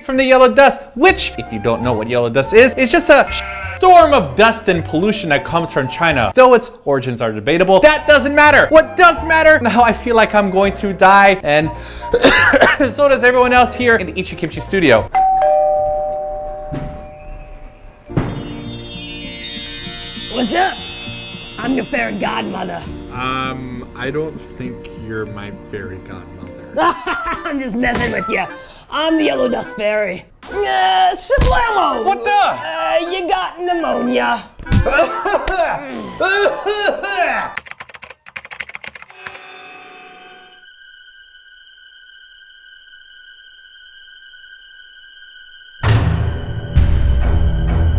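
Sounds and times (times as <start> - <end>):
two-note doorbell chime: 15.1 - 17.5
typing on laptop keyboard: 37.6 - 39.4.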